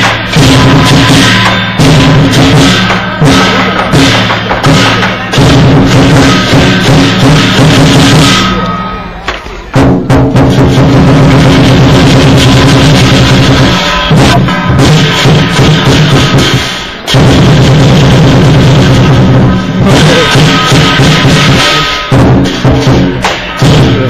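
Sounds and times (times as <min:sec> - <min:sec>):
cymbals clashing: 0:00.0 - 0:24.0
large drum beating fast: 0:00.0 - 0:24.0.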